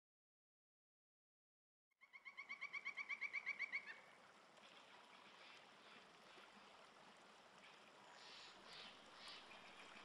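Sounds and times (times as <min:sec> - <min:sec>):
running water: 0:04.0 - 0:10.0.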